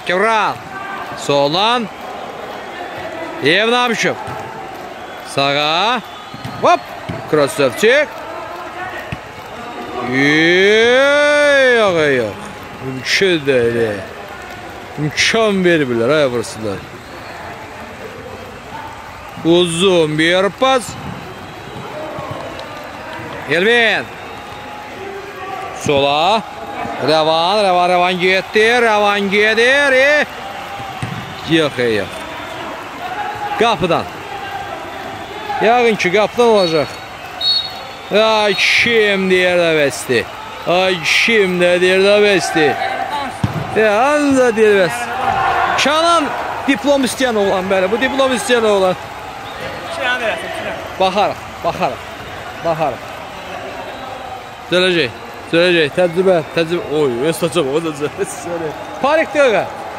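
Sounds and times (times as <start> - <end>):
background noise: 0.0 - 59.9
man commentating: 2.6 - 4.3, 5.2 - 14.2, 25.0 - 30.4, 31.3 - 37.0, 38.1 - 49.1
football kick thud: 43.4 - 43.8.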